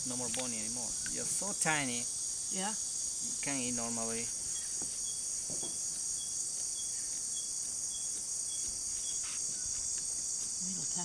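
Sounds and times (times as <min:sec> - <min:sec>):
insects high-pitched shrill drone: 0:00.0 - 0:11.0
short high insect note: 0:06.2 - 0:09.9.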